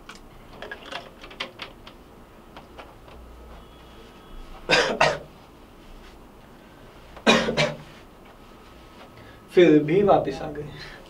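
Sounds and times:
man coughing: 0:04.7 - 0:05.3, 0:07.2 - 0:07.9.

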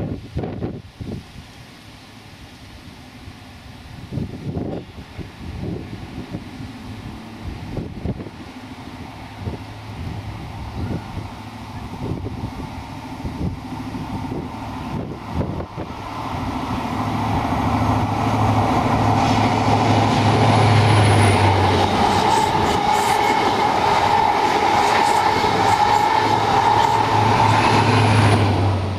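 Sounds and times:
train diesel engine under power: 0:00.1 - 0:28.9
train coaches rolling past: 0:01.4 - 0:28.9
steady high whine: 0:05.6 - 0:28.9.

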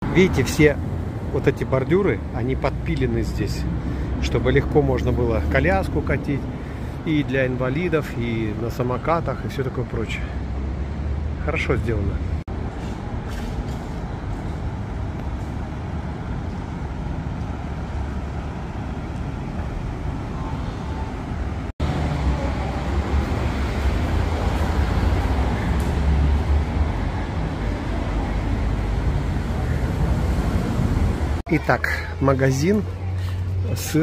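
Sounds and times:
bus and cars running: 0:00.0 - 0:34.0.

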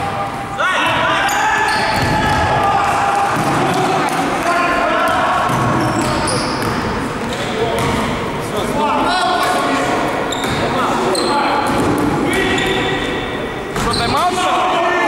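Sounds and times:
sneakers squeaking: 0:00.0 - 0:02.4, 0:05.0 - 0:08.4, 0:09.4 - 0:14.3
basketball bouncing on court: 0:01.8 - 0:02.4, 0:05.0 - 0:06.9, 0:07.7 - 0:08.1.

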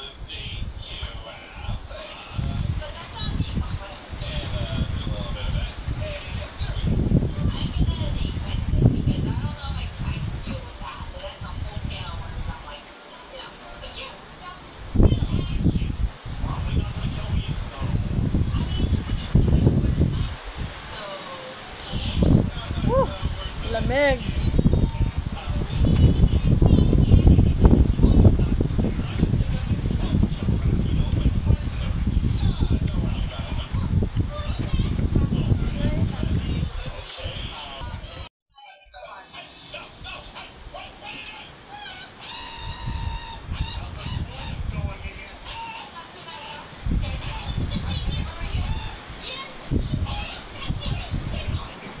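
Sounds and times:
high-pitched animal calls: 0:40.8 - 0:44.6.

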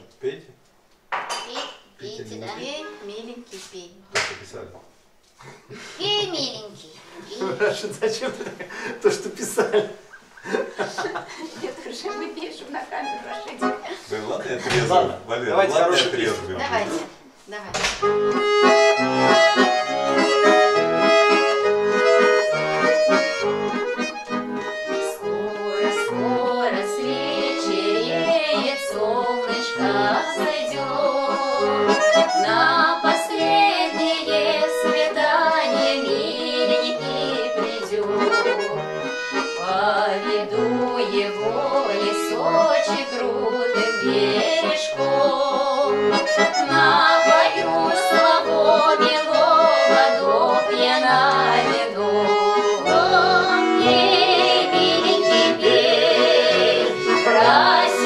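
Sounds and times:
accordion folk tune: 0:02.4 - 0:04.3, 0:05.8 - 0:07.9, 0:08.6 - 0:17.2, 0:17.8 - 0:58.0.

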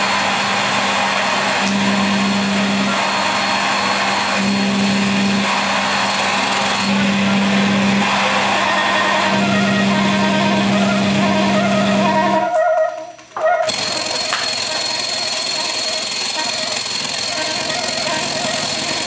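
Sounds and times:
loud electronic noise: 0:00.0 - 0:12.6, 0:13.6 - 0:19.0.

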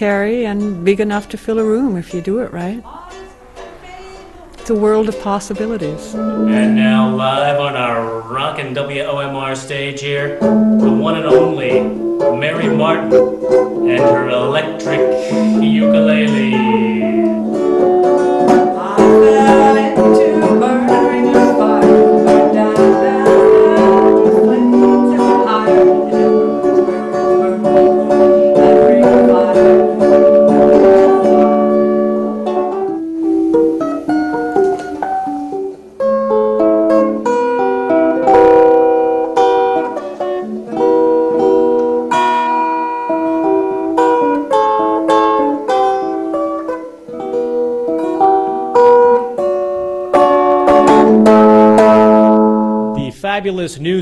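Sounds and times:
electric ukulele playing: 0:00.0 - 0:54.0.

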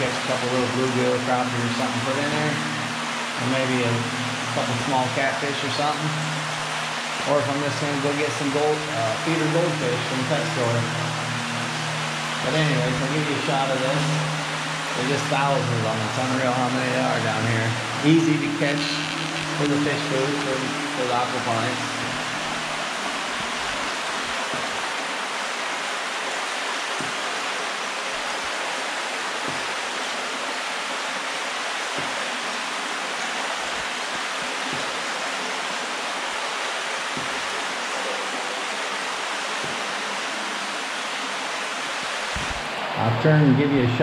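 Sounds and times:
stream flowing through culvert: 0:00.0 - 0:44.0.

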